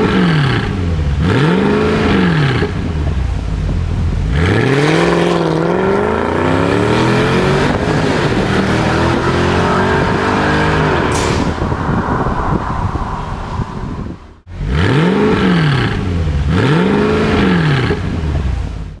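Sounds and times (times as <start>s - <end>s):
engine revving: 0.0s - 3.0s, 4.3s - 18.5s
car engine accelerating: 0.0s - 19.0s.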